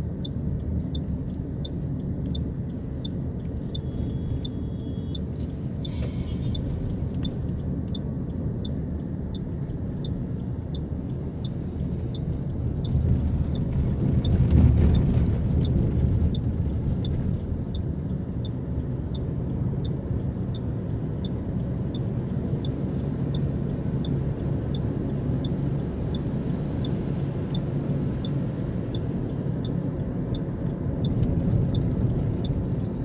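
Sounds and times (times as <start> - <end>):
road and engine rumble: 0.0 - 33.0.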